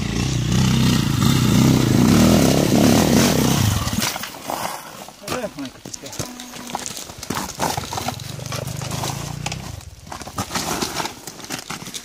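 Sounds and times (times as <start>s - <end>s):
dirt bike engine turning over: 0.0s - 4.4s, 6.6s - 12.0s
boots and tyres on loose rock: 0.0s - 12.0s.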